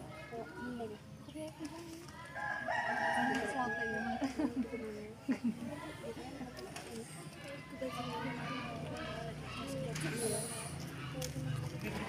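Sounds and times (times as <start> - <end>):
faint voices: 0.0 - 12.0
rooster crowing: 2.4 - 4.2.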